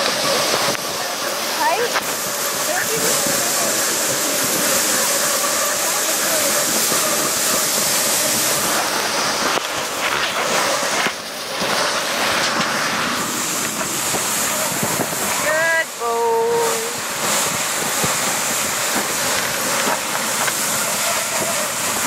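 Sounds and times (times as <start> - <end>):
sled runners hissing over snow: 0.0 - 22.0
wind on microphone: 0.0 - 22.0.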